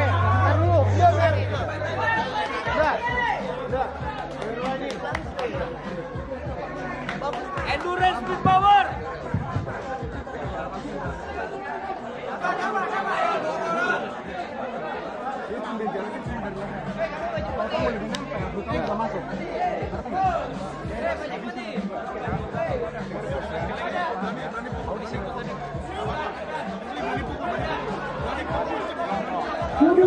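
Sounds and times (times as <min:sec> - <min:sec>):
people talking at once: 0:00.0 - 0:30.0.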